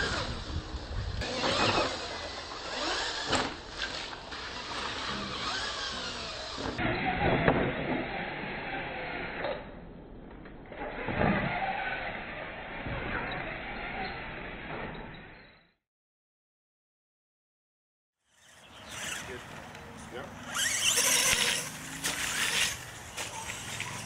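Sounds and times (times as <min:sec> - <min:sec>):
electric motors whining: 0:00.0 - 0:07.2, 0:18.3 - 0:24.0
tyres churning dirt: 0:18.4 - 0:24.0.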